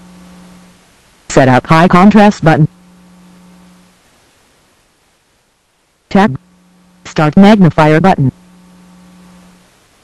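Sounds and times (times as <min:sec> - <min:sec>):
faint hiss: 0:00.0 - 0:10.0
low electrical hum: 0:00.0 - 0:10.0.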